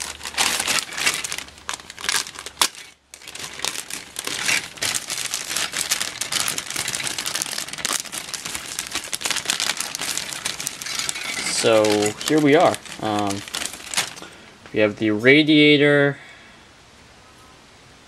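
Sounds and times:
plastic bag crinkling: 0:00.0 - 0:14.9.

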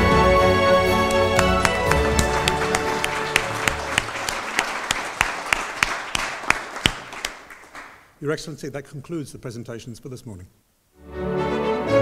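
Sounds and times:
music: 0:00.0 - 0:04.3, 0:11.0 - 0:12.0
audience applause: 0:00.7 - 0:08.0
sharp close claps: 0:01.0 - 0:08.1.

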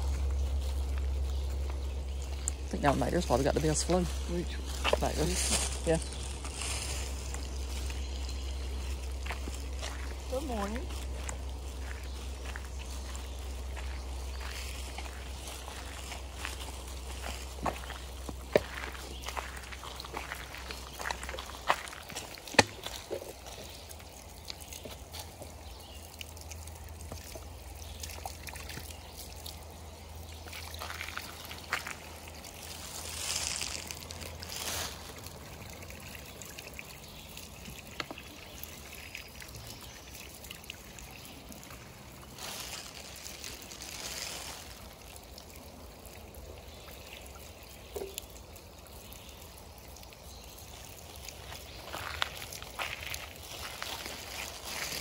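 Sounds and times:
water filling plastic bottle: 0:00.0 - 0:55.0
water splashing onto wet ground: 0:00.0 - 0:55.0.

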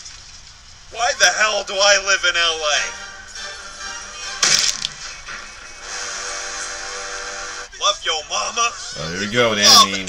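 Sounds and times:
cartoon soundtrack music: 0:01.0 - 0:07.7.

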